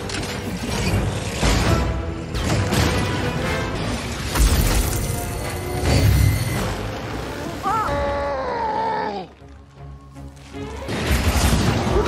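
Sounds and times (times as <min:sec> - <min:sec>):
action film music: 0:00.0 - 0:12.0.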